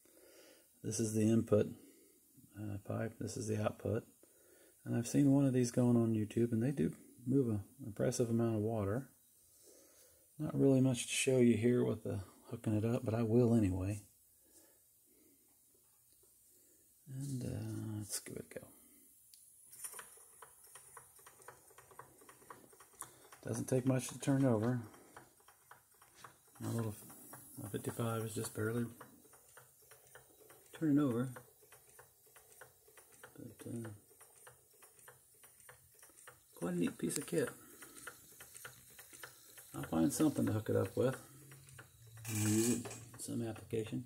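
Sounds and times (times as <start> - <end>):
small pump ticking: 19.8 - 44.0
model steam engine clicking: 19.9 - 44.0.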